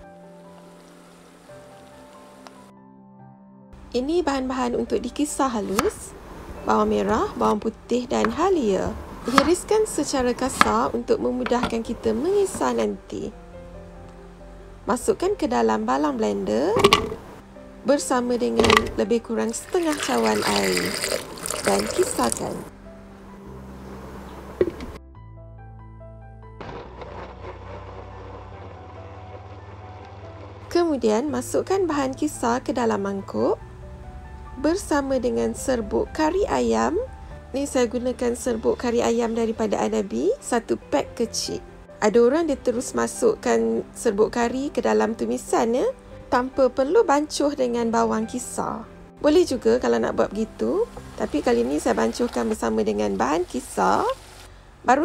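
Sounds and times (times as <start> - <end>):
soft background music: 0.0 - 55.0
spices sizzling in hot oil: 19.6 - 22.6, 50.9 - 54.5
electric blender grinding: 19.7 - 22.4, 26.6 - 30.7.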